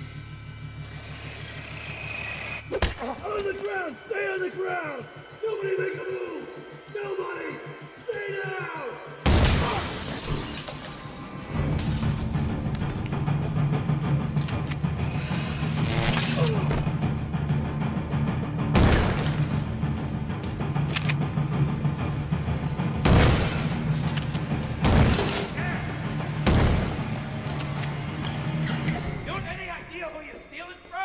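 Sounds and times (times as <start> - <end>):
droning film score: 0.0 - 31.0.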